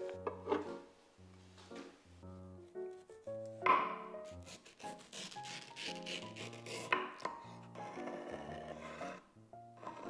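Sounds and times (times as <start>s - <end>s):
background music: 0.0s - 10.0s
knife slicing mango: 4.3s - 7.0s.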